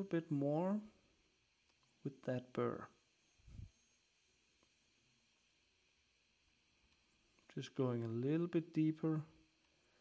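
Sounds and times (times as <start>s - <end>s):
faint background hiss: 0.0s - 10.0s
soft low puff: 3.4s - 3.8s.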